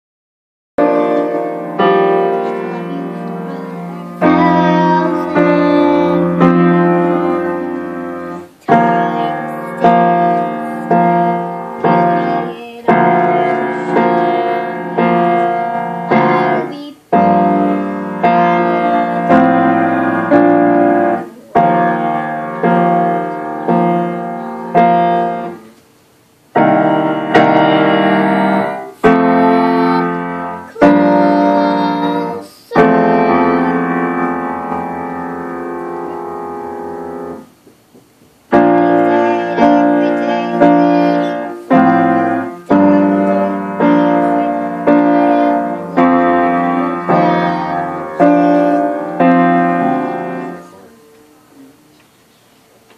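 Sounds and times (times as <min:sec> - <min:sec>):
piano chords ringing: 0:00.8 - 0:37.6, 0:38.4 - 0:51.9.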